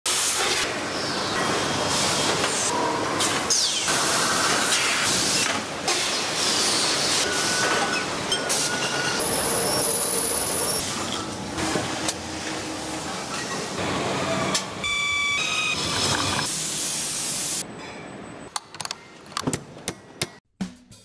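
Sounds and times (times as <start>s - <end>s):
factory machinery hiss and whirring: 0.1s - 17.7s.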